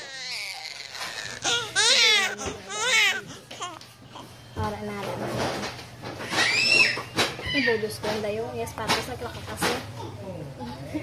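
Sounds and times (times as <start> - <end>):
newborn baby crying: 0.0 - 4.3.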